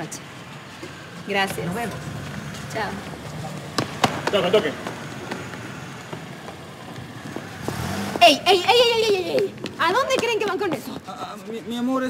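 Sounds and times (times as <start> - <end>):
car driving past: 0.0 - 11.3.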